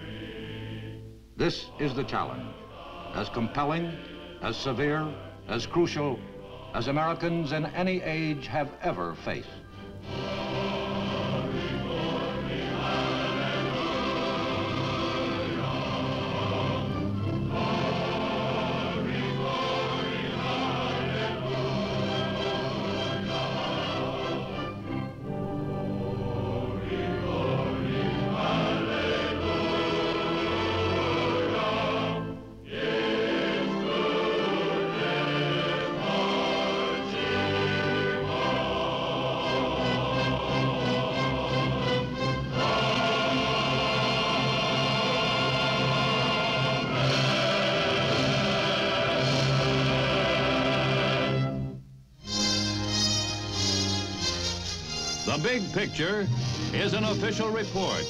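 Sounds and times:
choir singing held chords: 0.0 - 58.0
film score music: 0.0 - 58.0.

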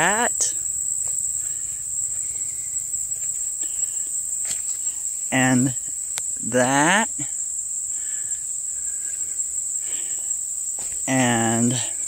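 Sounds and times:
insects trilling: 0.0 - 12.0.

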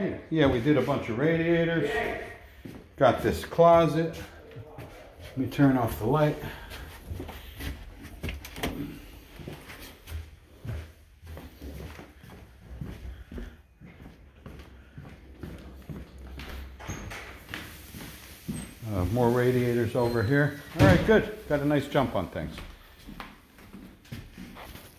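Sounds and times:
footsteps on wood floors: 0.0 - 24.9.

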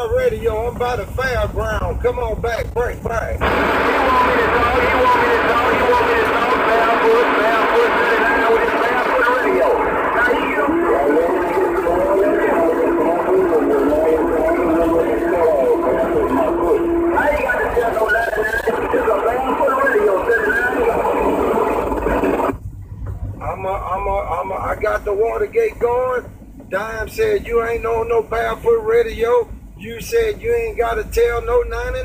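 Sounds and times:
garbled overlapping radio voices: 0.0 - 32.0.

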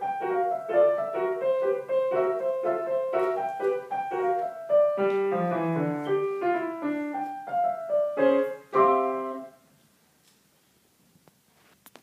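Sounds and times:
solo piano piece: 0.0 - 9.7.

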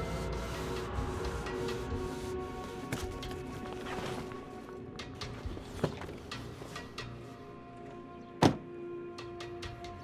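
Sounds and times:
background music: 0.0 - 10.0
car door shutting: 8.4 - 8.7.

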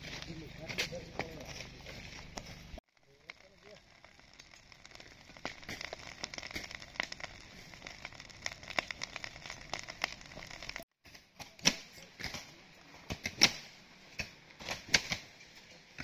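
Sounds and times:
plants burning crackling: 0.0 - 16.0.

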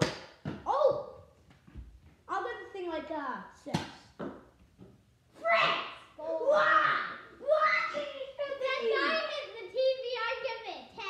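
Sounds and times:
children shouting excitedly: 5.4 - 11.0.

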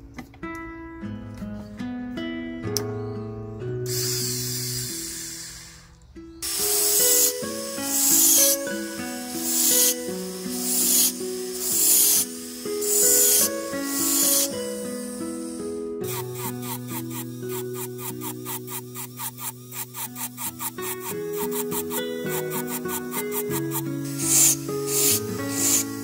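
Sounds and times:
rotary tool cutting metal: 3.9 - 26.0.

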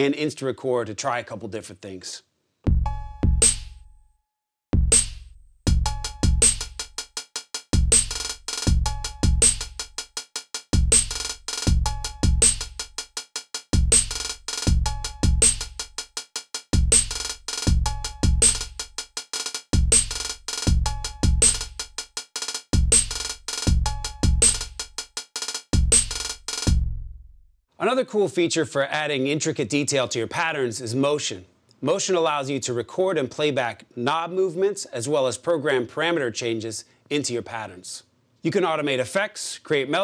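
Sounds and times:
bass drum kicks: 2.7 - 3.8, 4.8 - 6.8, 7.8 - 9.8, 10.8 - 12.8, 13.8 - 15.8, 16.8 - 18.7, 19.8 - 21.6, 22.8 - 24.6, 25.8 - 26.1, 26.7 - 27.2
fast closed hi-hat rolls: 5.0 - 26.8.

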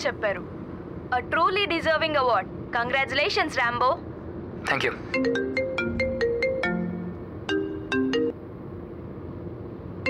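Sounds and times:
mobile phone ringtone: 5.2 - 8.4.

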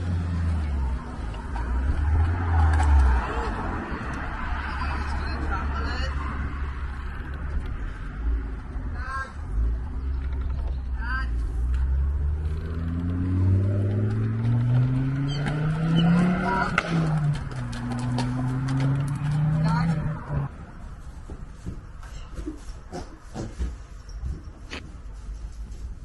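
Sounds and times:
vehicle engine accelerating: 0.0 - 8.7, 11.5 - 20.6.

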